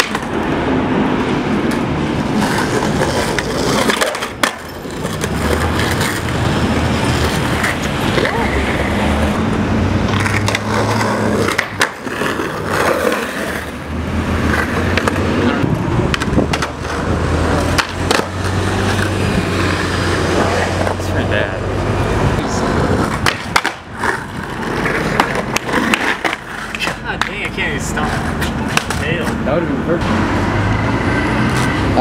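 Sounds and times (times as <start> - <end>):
skateboard clacks: 0.0 - 0.4, 1.5 - 9.4, 10.1 - 13.8, 14.4 - 21.0, 22.9 - 29.4
skateboard wheels rolling on stone: 0.0 - 29.5.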